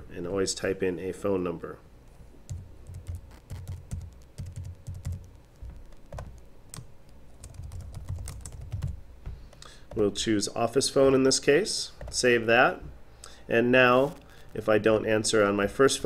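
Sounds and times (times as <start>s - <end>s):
computer keyboard typing: 2.5s - 10.0s.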